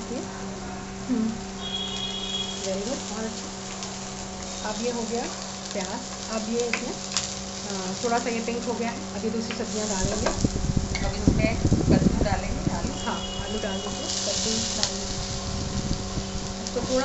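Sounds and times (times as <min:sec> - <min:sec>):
onions sizzling in oil: 0:00.0 - 0:17.0.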